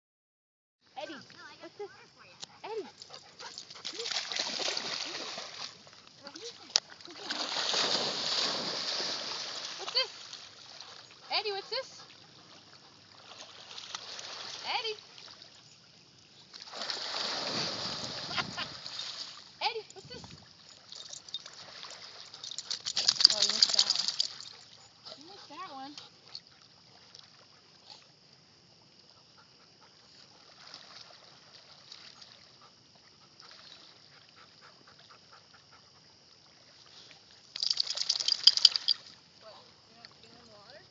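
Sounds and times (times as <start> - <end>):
dogs splashing through water: 1.4 - 15.7, 16.4 - 19.6, 20.6 - 28.2, 29.2 - 40.9.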